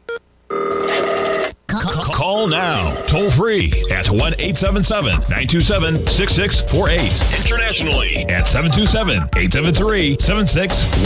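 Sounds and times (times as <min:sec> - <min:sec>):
music: 0:03.0 - 0:11.0.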